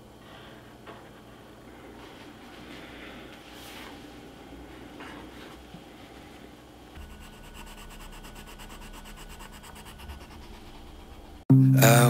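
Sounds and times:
pencil scratching on paper: 7.0 - 11.4.

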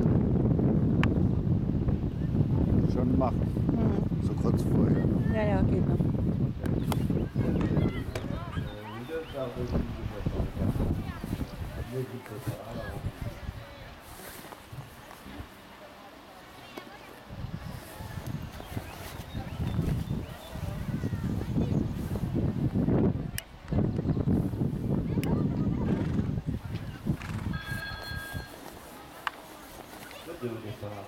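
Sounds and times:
faint outdoor background: 0.0 - 31.0
indistinct talk of people: 1.0 - 31.0
hoofbeats on sand: 25.8 - 31.0
high steady signal tone: 27.5 - 28.7.

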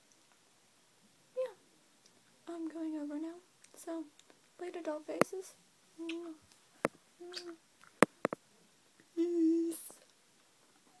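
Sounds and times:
woman humming: 6.0 - 6.4, 7.2 - 7.6, 9.1 - 10.1.

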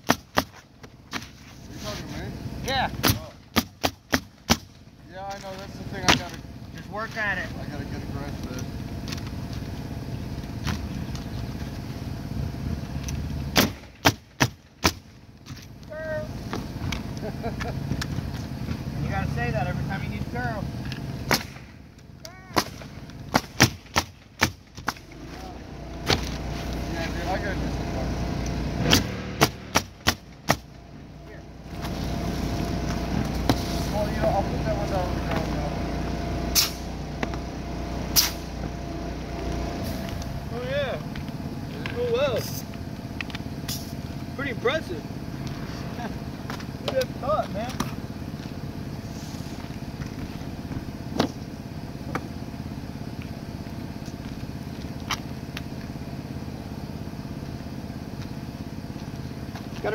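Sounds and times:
pneumatic nailer firing: 0.0 - 1.2, 3.0 - 4.8, 13.5 - 15.1, 21.2 - 21.8, 22.5 - 25.2, 28.8 - 30.8, 36.5 - 37.0, 38.1 - 38.6
low motor drone: 4.7 - 59.9.

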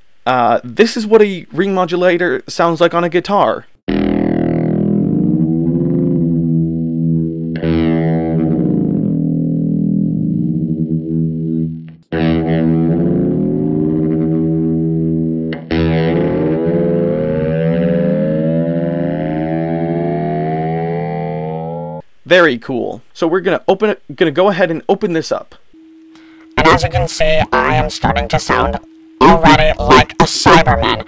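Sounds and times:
ring-modulated electric guitar: 3.9 - 22.0, 25.7 - 31.0.

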